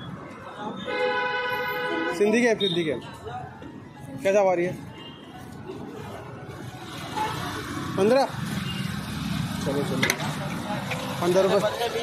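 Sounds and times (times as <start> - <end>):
street traffic passing: 0.0 - 12.0.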